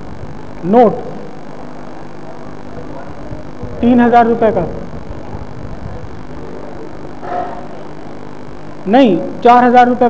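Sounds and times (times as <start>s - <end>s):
electrical hum: 0.0s - 10.0s
lecture hall background noise: 0.0s - 10.0s
faint voice: 1.5s - 4.0s.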